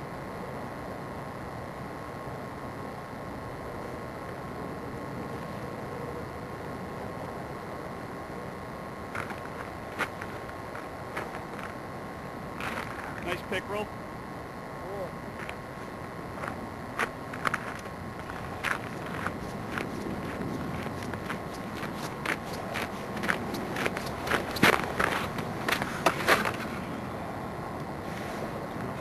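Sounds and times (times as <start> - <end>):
footsteps crunching on snow: 9.1 - 11.8, 12.6 - 13.3, 15.4 - 26.8.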